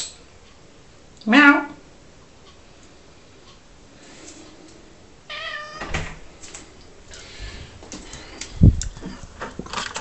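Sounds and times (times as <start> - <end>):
cat meowing: 5.3 - 6.0.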